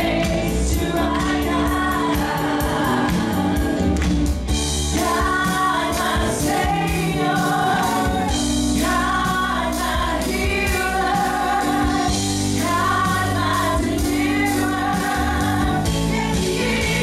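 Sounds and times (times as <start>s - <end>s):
live band playing: 0.0s - 17.0s
women singing gospel song: 0.0s - 17.0s.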